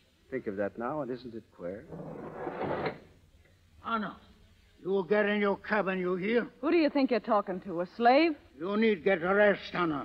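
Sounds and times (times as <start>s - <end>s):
door scraping open: 1.8s - 3.1s.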